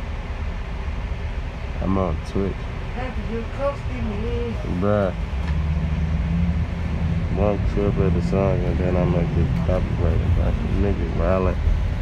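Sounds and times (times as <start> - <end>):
cars driving past: 0.0 - 12.0
low rumble of traffic: 0.0 - 12.0.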